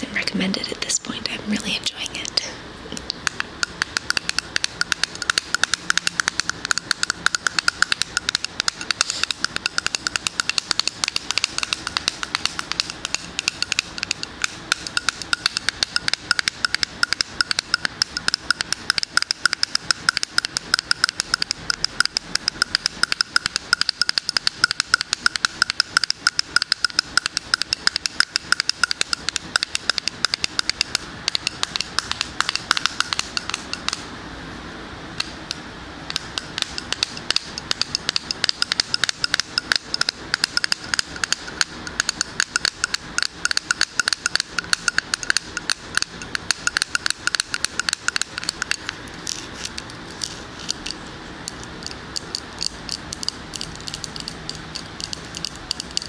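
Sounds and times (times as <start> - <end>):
fingers tapping on metal lid: 3.0 - 34.0, 35.2 - 56.0.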